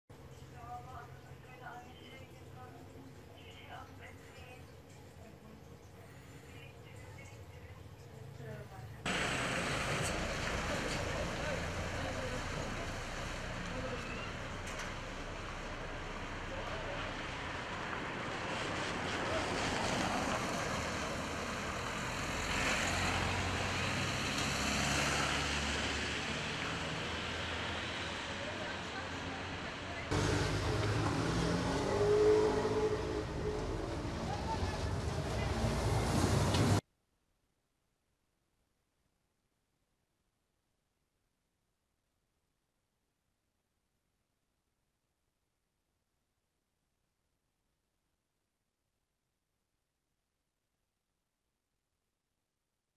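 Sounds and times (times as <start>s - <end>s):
people talking: 0.5s - 15.3s, 16.3s - 17.3s, 28.3s - 36.0s
cars and truck driving past: 9.1s - 36.8s.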